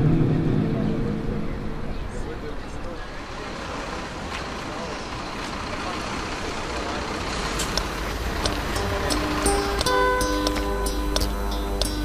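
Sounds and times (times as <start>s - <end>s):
indistinct voices: 0.0s - 12.0s
traffic and engine noise: 0.0s - 12.0s
sharp clicks: 7.6s - 12.0s
music with held notes: 7.8s - 12.0s.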